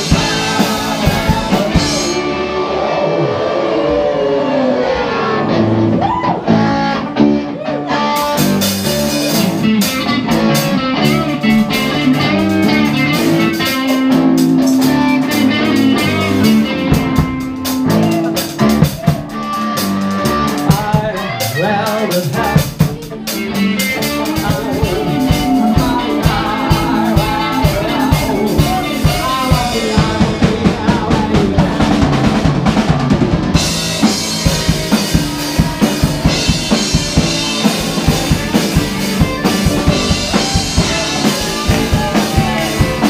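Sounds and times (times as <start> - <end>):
drum kit: 0.0 - 3.5, 5.5 - 43.0
bass guitar: 0.0 - 43.0
electric guitar: 0.0 - 43.0.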